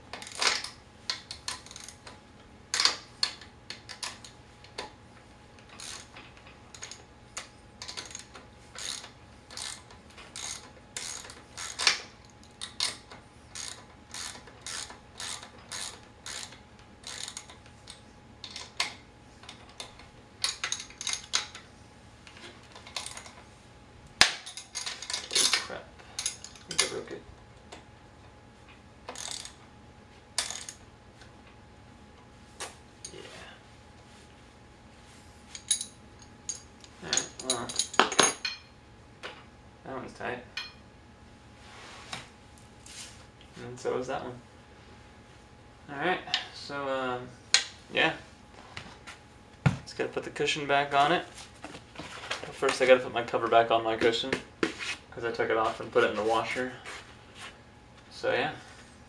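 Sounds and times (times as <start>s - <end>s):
metal wrench clicking: 6.7s - 17.6s, 29.1s - 29.6s.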